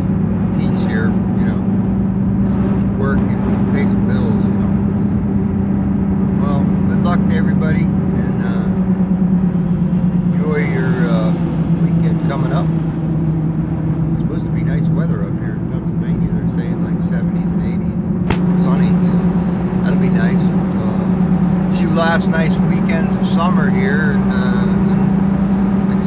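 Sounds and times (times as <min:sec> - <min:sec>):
truck engine and road noise: 0:00.0 - 0:26.0
man talking: 0:00.6 - 0:01.7, 0:02.4 - 0:04.8, 0:06.4 - 0:08.8, 0:10.3 - 0:12.7, 0:14.2 - 0:25.0
sharp click: 0:18.3 - 0:19.0.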